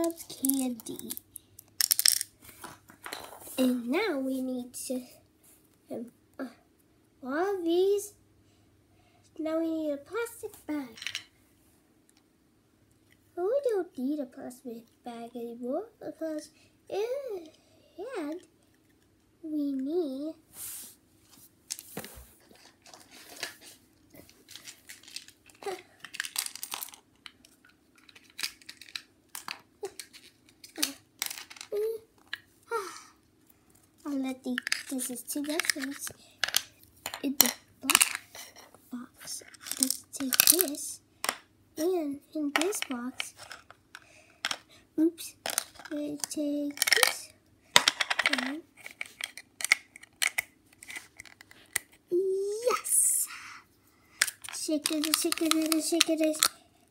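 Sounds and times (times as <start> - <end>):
plastic toy pieces clicking: 0.0 - 2.3, 24.6 - 31.8, 34.5 - 38.3, 39.4 - 41.4, 45.4 - 52.0, 54.2 - 56.6
packaging crinkling and rustling: 22.6 - 27.3, 54.2 - 56.5
small clicks and knocks: 54.2 - 56.6.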